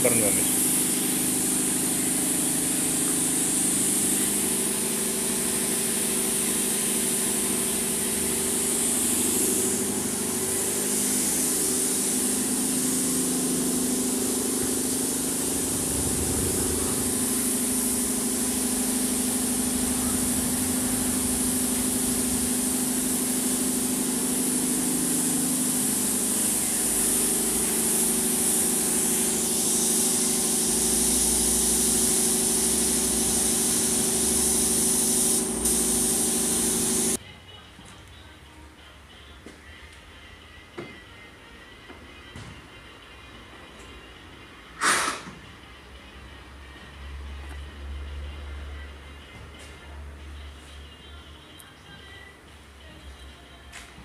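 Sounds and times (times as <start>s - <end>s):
air compressor humming: 0.0s - 37.2s, 44.8s - 45.4s
paint spray gun hissing: 0.0s - 37.2s, 44.8s - 45.3s.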